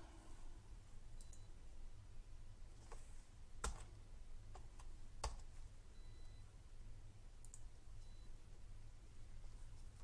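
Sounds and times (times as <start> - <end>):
low steady hum: 0.0 - 10.0
computer mouse clicks: 7.4 - 7.7.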